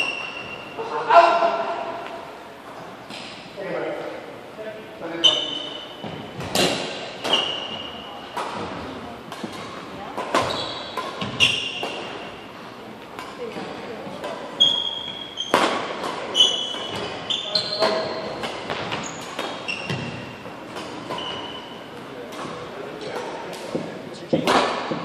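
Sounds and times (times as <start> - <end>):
shoe squeaks on wooden floor: 0.0 - 0.8, 5.2 - 6.5, 7.2 - 8.3, 10.4 - 12.3, 14.6 - 20.4, 21.0 - 21.8
racket hitting shuttlecock: 6.0 - 12.3, 13.1 - 17.2, 17.8 - 25.0.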